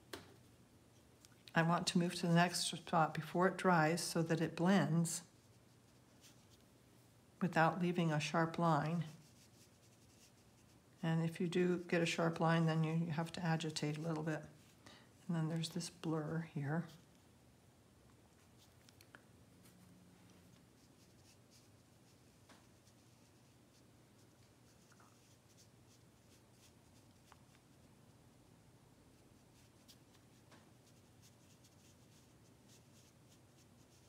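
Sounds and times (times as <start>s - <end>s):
low room hum: 0.0s - 34.0s
brush scratching on paper: 5.2s - 6.6s, 8.5s - 11.0s, 19.6s - 27.9s, 29.1s - 34.0s.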